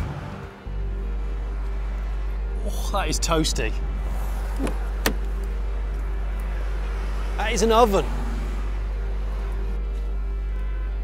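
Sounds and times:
car door latch clicking: 4.5s - 5.3s.

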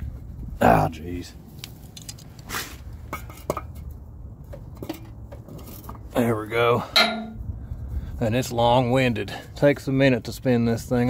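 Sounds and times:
low steady rumble: 0.0s - 11.0s
metal wrench clinking and rattling: 6.8s - 7.4s.

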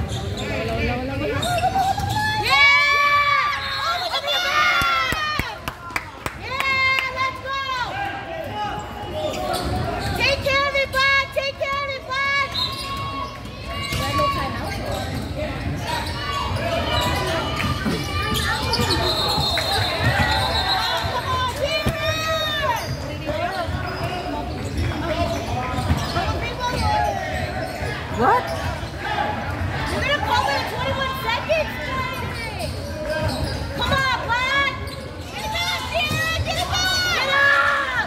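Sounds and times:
sneaker squeaks: 0.0s - 2.6s, 8.7s - 37.5s
players and spectators calling out: 0.0s - 38.0s.

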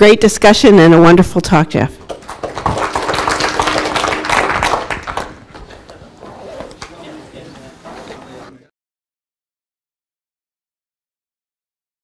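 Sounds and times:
audience applauding: 2.0s - 7.0s.

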